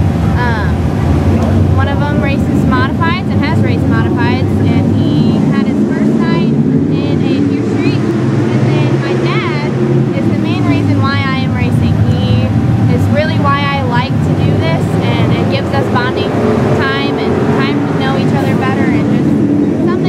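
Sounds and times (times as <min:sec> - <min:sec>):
race car engines rumbling: 0:00.0 - 0:20.0
woman talking: 0:00.4 - 0:20.0.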